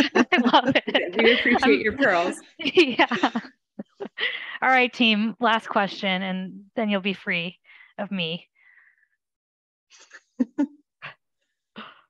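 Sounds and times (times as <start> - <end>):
woman laughing softly: 0.0 - 4.5.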